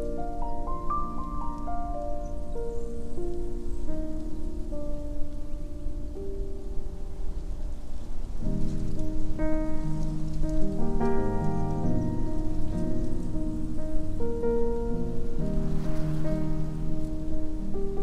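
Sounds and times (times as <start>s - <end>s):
low noise haze: 0.0s - 18.0s
solo piano pop ballad: 0.0s - 18.0s.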